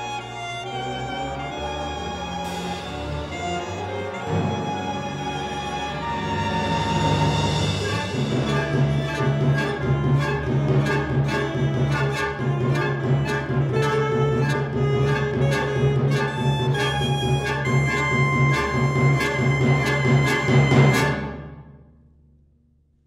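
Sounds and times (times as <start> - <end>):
low string drone: 0.0 - 21.2
saxophone and orchestra playing: 0.0 - 21.6.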